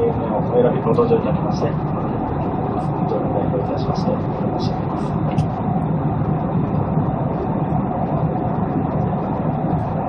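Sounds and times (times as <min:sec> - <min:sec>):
airplane cabin engine rush: 0:00.0 - 0:10.0.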